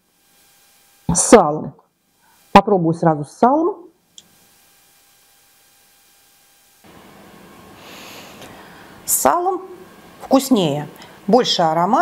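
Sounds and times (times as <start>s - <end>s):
hiss: 7.8s - 8.6s
breath through the nose: 7.8s - 9.0s.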